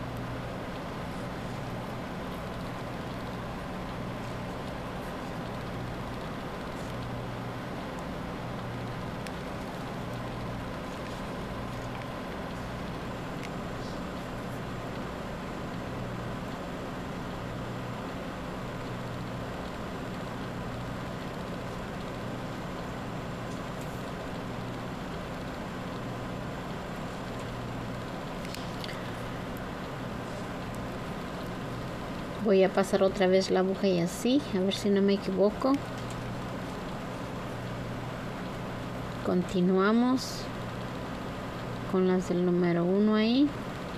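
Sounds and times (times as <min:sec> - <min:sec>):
constant hiss: 0:00.0 - 0:43.9
low wavering hum: 0:00.0 - 0:43.9.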